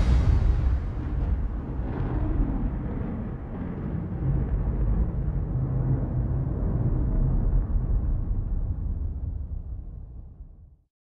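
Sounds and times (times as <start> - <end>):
low rumbling soundtrack drone: 0.0 - 10.8.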